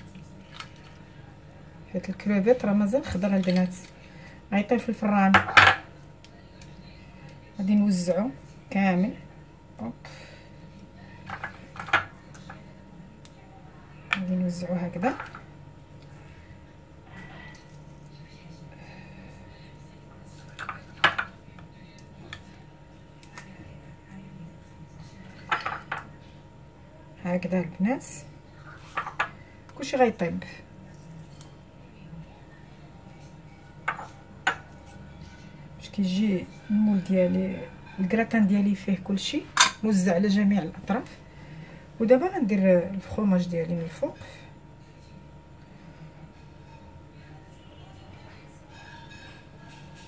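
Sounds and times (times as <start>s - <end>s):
soft food handling sounds: 0.0s - 4.9s, 9.2s - 14.3s, 14.9s - 27.2s, 30.6s - 38.0s
faint steady hum: 0.0s - 50.0s.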